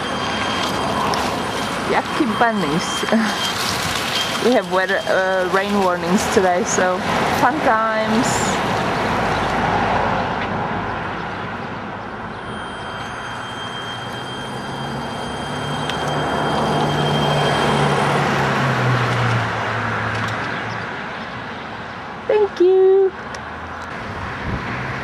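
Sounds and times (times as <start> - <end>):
wash of wet surroundings noise: 0.0 - 25.0.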